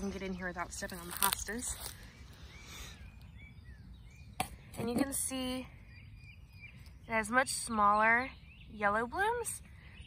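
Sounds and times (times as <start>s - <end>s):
faint bird chirps: 0.0s - 10.0s.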